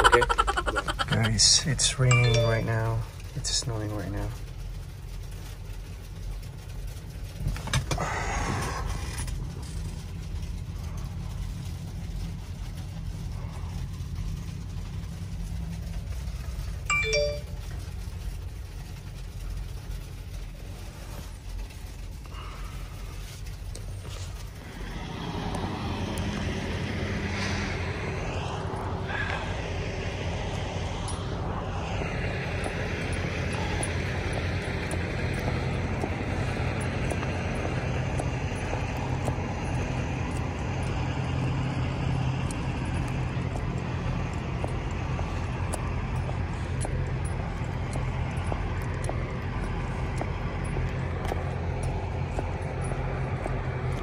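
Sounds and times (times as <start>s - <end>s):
truck engine idling: 0.0s - 54.0s
wind outdoors: 0.0s - 54.0s
short electronic chime: 2.1s - 3.0s, 16.9s - 17.6s.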